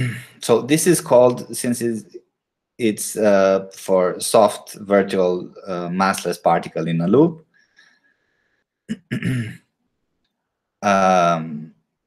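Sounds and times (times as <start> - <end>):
man clearing his throat: 0.0 - 0.4, 8.9 - 9.6.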